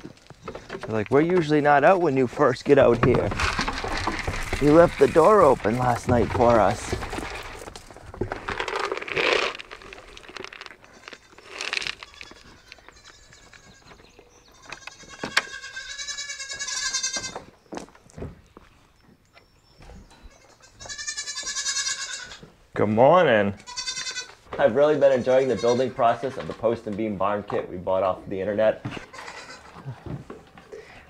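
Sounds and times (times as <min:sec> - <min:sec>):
rough scuffling: 0:00.0 - 0:15.6
goats bleating: 0:14.5 - 0:17.4, 0:20.4 - 0:22.5, 0:23.6 - 0:26.3, 0:28.8 - 0:30.1.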